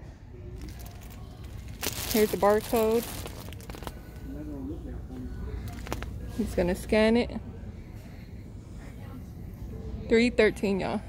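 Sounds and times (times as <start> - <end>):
low store background: 0.0 - 11.0
plastic wrapper crinkling: 0.6 - 4.1.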